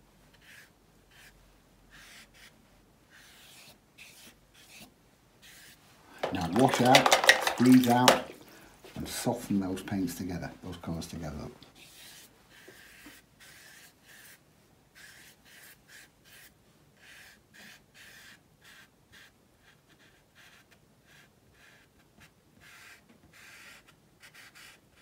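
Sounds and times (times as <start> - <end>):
brush swishing across paper: 0.3 - 7.2, 11.7 - 14.4.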